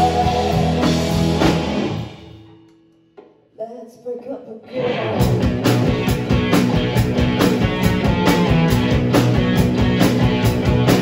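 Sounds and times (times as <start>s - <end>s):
person singing: 0.0s - 1.0s
live rock band playing: 0.0s - 2.6s, 4.8s - 11.0s.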